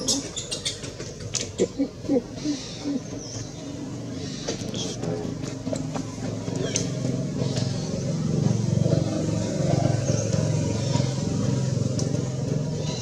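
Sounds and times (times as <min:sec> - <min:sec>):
vehicle engine running: 0:00.0 - 0:13.0.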